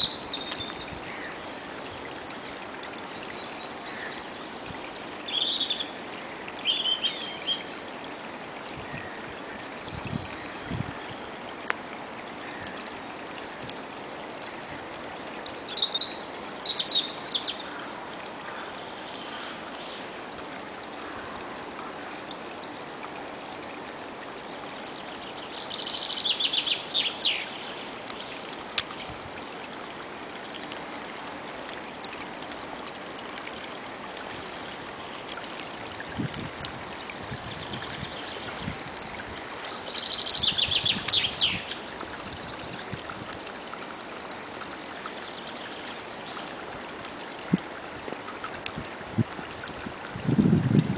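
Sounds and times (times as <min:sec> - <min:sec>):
songbird chirping: 0:00.0 - 0:01.4, 0:24.9 - 0:29.8, 0:39.4 - 0:47.5
stream trickling over leaves: 0:00.0 - 0:50.9
songbird trill: 0:12.4 - 0:17.9, 0:25.1 - 0:27.8, 0:39.5 - 0:43.0.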